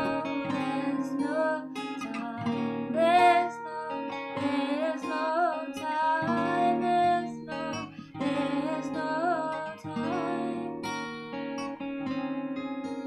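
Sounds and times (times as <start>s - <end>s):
woman singing: 0.0s - 10.9s
acoustic guitar strumming: 0.0s - 13.0s.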